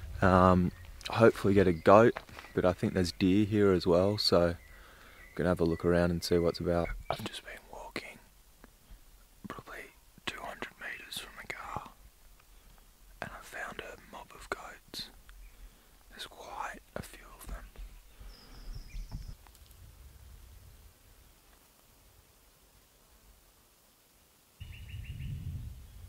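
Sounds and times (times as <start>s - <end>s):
man whispering: 5.4s - 8.3s, 9.5s - 12.0s, 13.2s - 15.2s, 16.1s - 18.0s.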